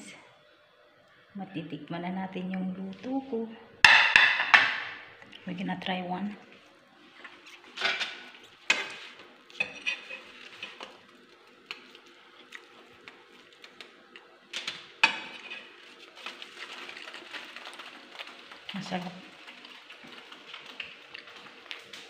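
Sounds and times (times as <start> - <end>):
eating noises: 11.7 - 14.3, 16.6 - 22.0.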